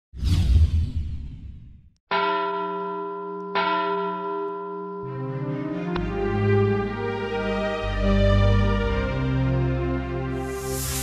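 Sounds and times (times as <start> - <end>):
bell strikes ringing: 2.1 - 5.3.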